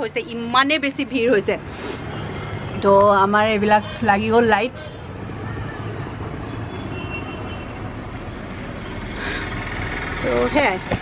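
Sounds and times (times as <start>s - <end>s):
city traffic rumble: 0.0s - 11.0s.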